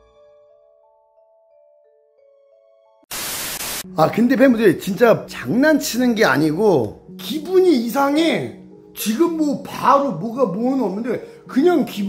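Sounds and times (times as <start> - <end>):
loud static hiss burst: 3.1 - 3.9.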